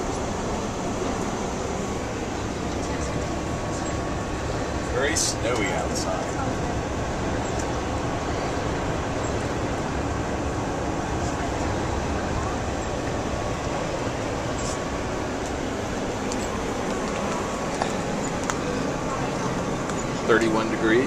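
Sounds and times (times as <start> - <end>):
bus engine drone: 0.0 - 21.0
tyres on wet road: 0.0 - 21.0.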